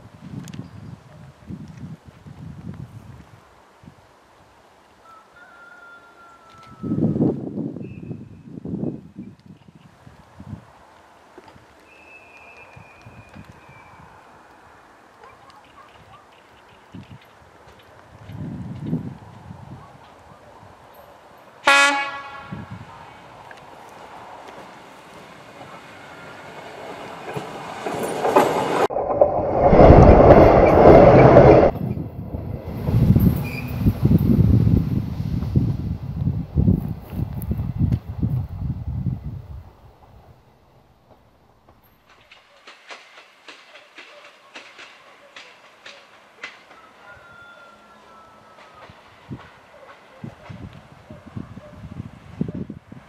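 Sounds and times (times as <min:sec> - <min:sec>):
wind rumble on microphone: 0:00.0 - 0:04.1, 0:06.6 - 0:10.8, 0:16.9 - 0:20.9, 0:22.4 - 0:23.5, 0:28.8 - 0:40.5, 0:50.2 - 0:53.0
train horn blast: 0:21.6 - 0:22.8
railcar wheels clicking over joints: 0:24.0 - 0:34.5, 0:41.1 - 0:47.1.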